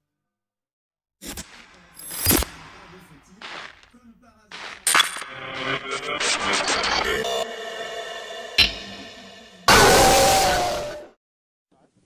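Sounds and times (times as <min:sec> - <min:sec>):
harsh hissing blast: 0:06.0 - 0:11.0.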